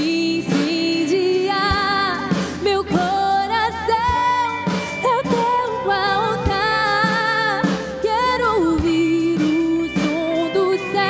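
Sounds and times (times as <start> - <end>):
instrumental backing: 0.0 - 11.0
woman singing into a microphone: 0.0 - 11.0.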